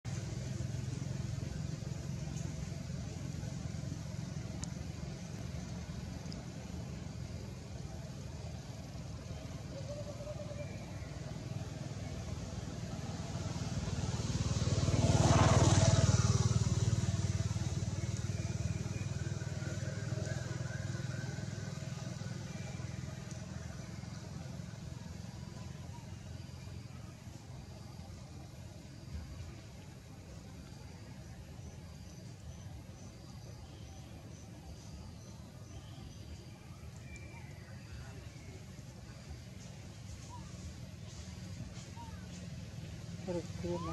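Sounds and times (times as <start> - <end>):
vehicle passing by: 0.1 - 43.9.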